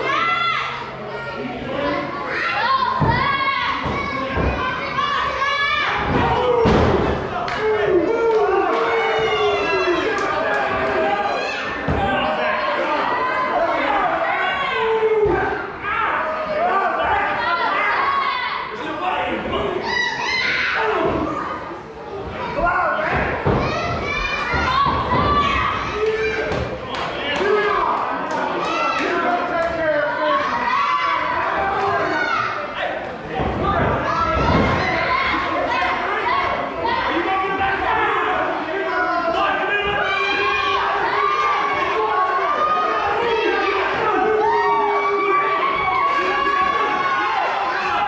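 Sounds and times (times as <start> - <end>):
children shouting: 0.0 - 48.0.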